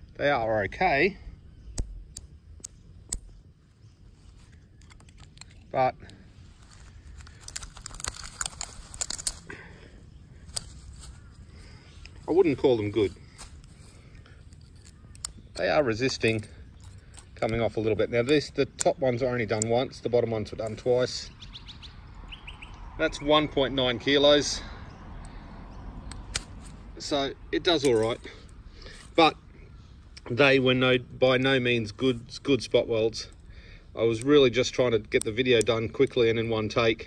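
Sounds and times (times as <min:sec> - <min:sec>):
low road noise rumble: 0:00.0 - 0:37.0
faint clicks: 0:13.4 - 0:17.6
spot welds snapping and crackling: 0:30.9 - 0:36.7.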